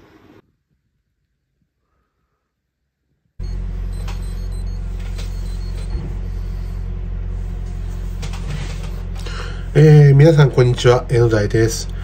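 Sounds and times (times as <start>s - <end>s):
steady low hum: 3.4s - 12.0s.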